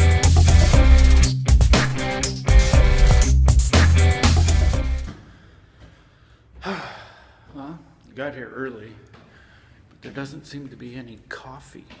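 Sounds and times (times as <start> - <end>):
man sighing: 6.6 - 7.8.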